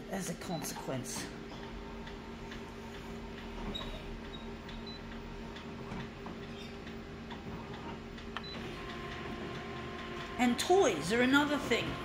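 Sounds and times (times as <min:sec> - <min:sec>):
photocopier humming: 0:00.0 - 0:12.0
photocopier mechanism ticks: 0:02.0 - 0:12.0.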